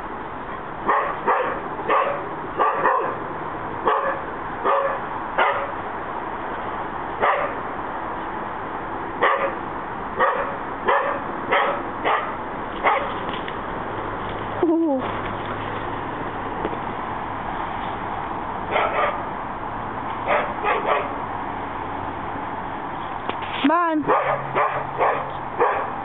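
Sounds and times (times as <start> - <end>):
dog barking: 0.8 - 3.2, 3.8 - 5.8, 7.2 - 7.6, 9.2 - 9.6, 10.2 - 13.2, 18.7 - 19.2, 20.3 - 21.2, 24.1 - 26.0.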